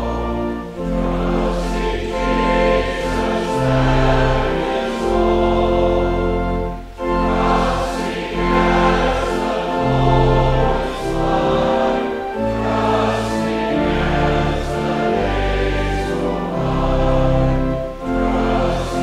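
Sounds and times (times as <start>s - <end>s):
congregation singing a hymn: 0.0s - 19.0s
instrumental accompaniment: 0.0s - 19.0s.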